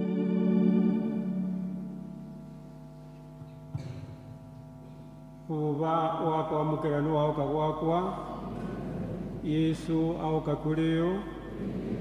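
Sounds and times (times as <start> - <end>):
faint held musical chord: 0.0 - 12.0
man chanting: 5.5 - 8.4, 9.4 - 11.5.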